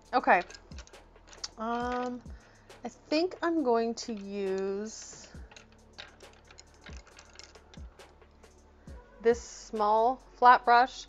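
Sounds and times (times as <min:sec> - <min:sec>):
paintbrush handles clicking: 0:00.0 - 0:02.4, 0:03.3 - 0:08.1
faint background music: 0:00.0 - 0:11.0.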